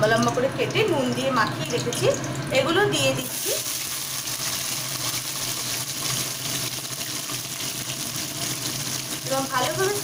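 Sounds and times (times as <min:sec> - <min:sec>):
vegetables sizzling in oil: 0:00.3 - 0:10.0.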